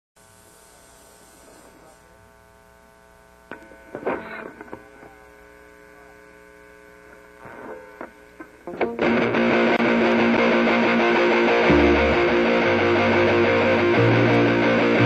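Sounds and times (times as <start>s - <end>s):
amplifier electrical hum: 0.2s - 15.0s.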